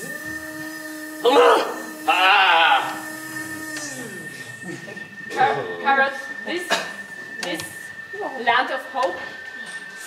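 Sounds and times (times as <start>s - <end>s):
low flat held tone: 0.0s - 10.0s
loud vocal outbursts: 1.1s - 4.3s.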